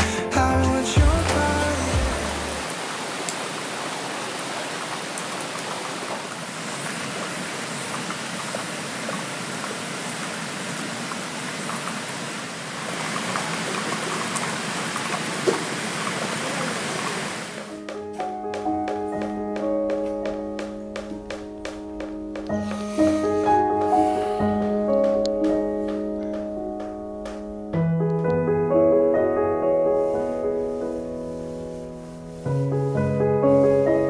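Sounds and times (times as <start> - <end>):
music: 0.0 - 2.7, 17.7 - 34.0
song playing: 0.0 - 2.7, 17.7 - 29.7
steady rain falling: 1.1 - 27.4.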